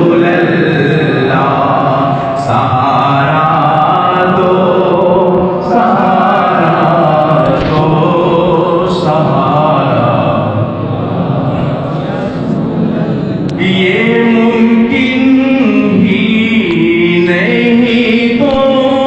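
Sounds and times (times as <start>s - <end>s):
voices chanting: 0.0s - 16.5s.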